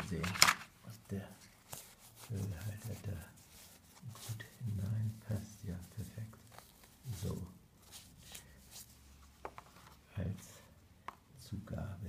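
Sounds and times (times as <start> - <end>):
pen case being handled: 0.0 - 0.8.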